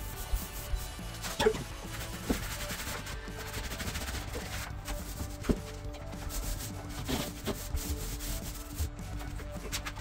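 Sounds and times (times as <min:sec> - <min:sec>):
rubbing and scraping on wood: 0:00.0 - 0:10.0.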